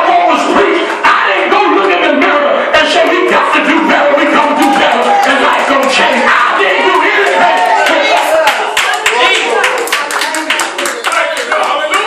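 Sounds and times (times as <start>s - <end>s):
voices calling out: 0.0s - 12.0s
rhythmic hand clapping: 4.5s - 12.0s.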